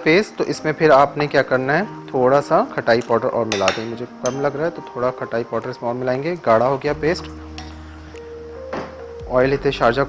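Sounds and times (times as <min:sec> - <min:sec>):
spoon stirring thick paste: 0:02.3 - 0:08.3
spoon clinking against bowl: 0:03.5 - 0:04.6, 0:07.6 - 0:07.8
man talking: 0:09.3 - 0:10.0.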